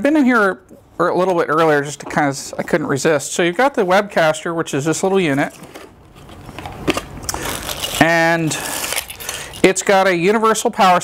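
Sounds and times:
cardboard and plastic rustling: 5.2s - 9.8s.

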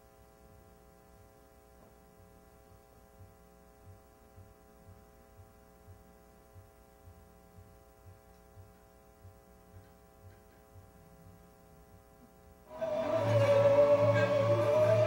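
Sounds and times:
faint steady hum: 0.0s - 15.0s
soft low thumps: 1.8s - 12.4s.

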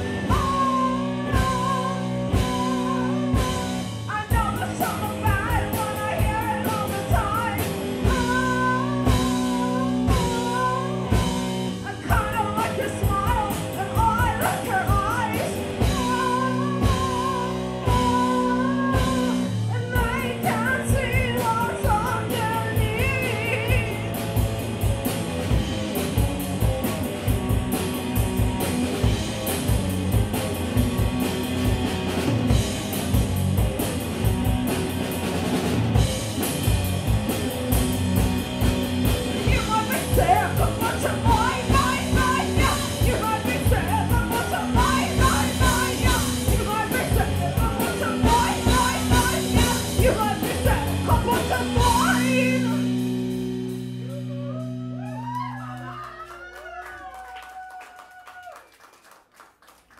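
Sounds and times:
person singing: 0.0s - 24.0s, 39.4s - 53.0s
drum kit with cymbal hits: 0.0s - 55.4s
rock band playing: 0.0s - 56.8s
electric guitar: 0.0s - 57.2s.

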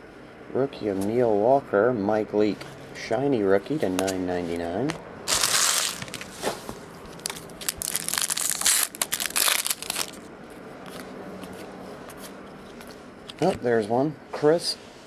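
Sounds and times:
foil wrapper tearing and crinkling: 5.3s - 6.4s, 7.1s - 10.3s
card handling: 5.3s - 10.3s.

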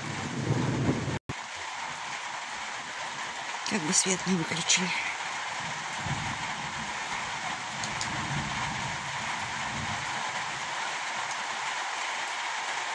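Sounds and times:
distant thunder rumble: 0.0s - 1.2s, 3.8s - 11.3s
steady rain falling: 0.0s - 12.9s.

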